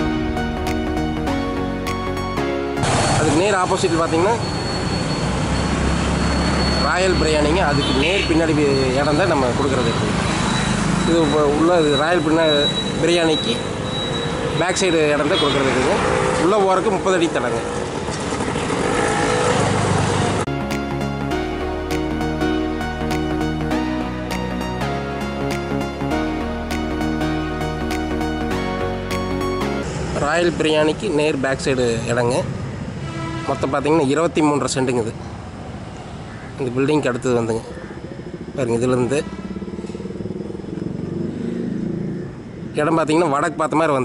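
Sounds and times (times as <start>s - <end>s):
street noise: 0.0s - 44.0s
motorcycle riding past: 15.5s - 20.5s, 37.7s - 43.0s.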